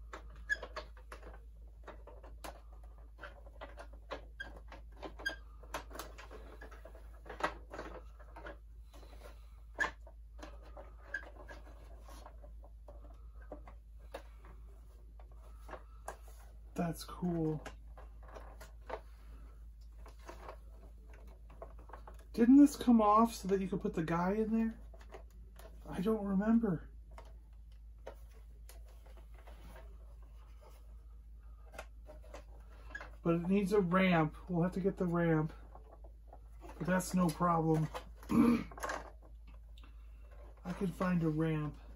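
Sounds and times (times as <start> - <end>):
plastic toy being handled: 0.0 - 41.9
plastic toy clicks and handling: 0.1 - 14.6.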